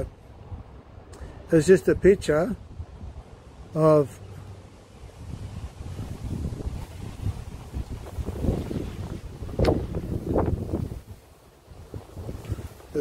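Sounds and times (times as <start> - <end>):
wind blowing on microphone: 0.0 - 3.4, 5.0 - 13.0.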